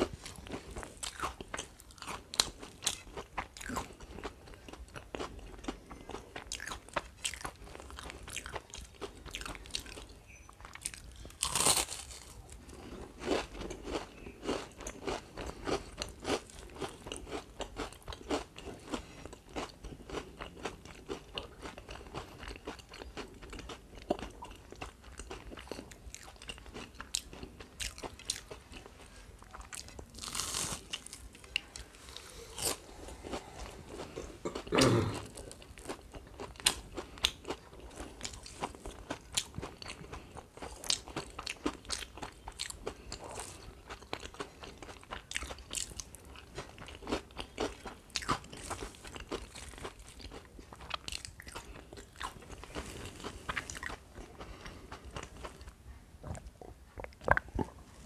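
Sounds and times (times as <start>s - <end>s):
chewing and crunching fried fish: 0.0s - 57.9s.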